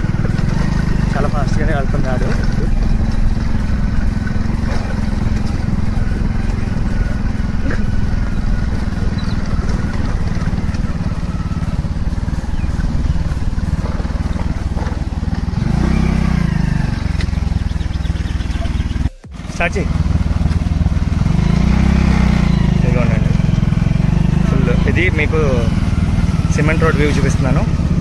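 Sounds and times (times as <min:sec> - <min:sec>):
vehicle rumbling: 0:00.0 - 0:28.0.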